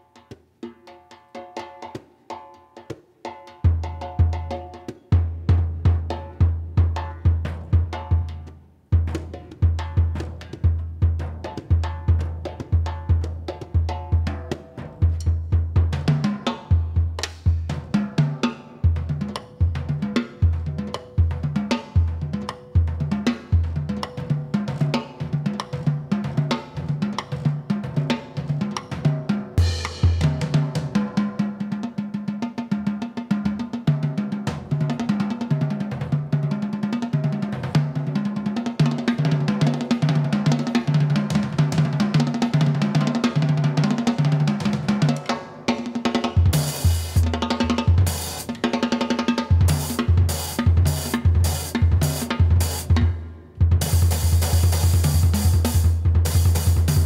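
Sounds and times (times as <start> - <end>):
tom drum patterns: 0.0 - 57.0
snare and cymbal strokes: 13.9 - 32.9, 44.0 - 57.0
bass drum beats: 49.5 - 57.0.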